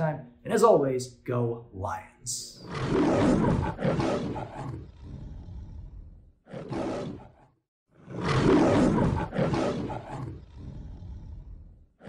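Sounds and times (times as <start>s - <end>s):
lion roaring: 2.6s - 12.0s.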